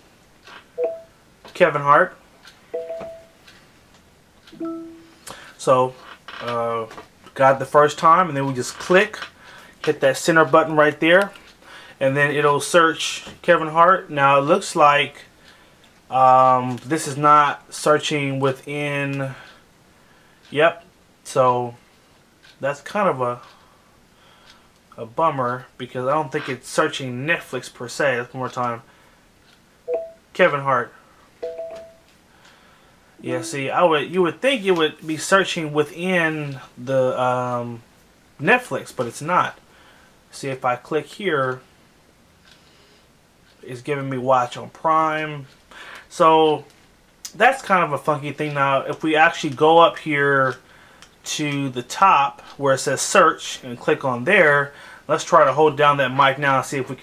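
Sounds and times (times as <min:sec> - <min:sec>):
short pitched tv chime: 0:04.6 - 0:05.2, 0:33.2 - 0:33.9.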